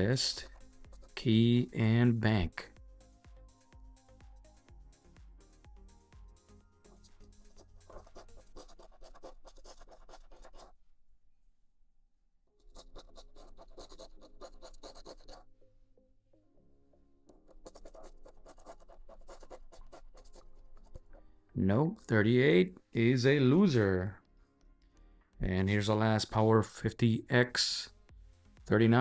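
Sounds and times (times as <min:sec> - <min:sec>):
coin scratching lottery ticket: 0:00.0 - 0:01.6, 0:07.5 - 0:10.7, 0:12.6 - 0:15.4, 0:17.5 - 0:21.2.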